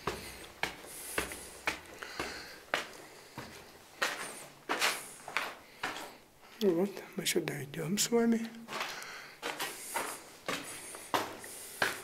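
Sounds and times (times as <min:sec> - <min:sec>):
footsteps on concrete stairs: 0:00.0 - 0:06.6, 0:08.6 - 0:12.0.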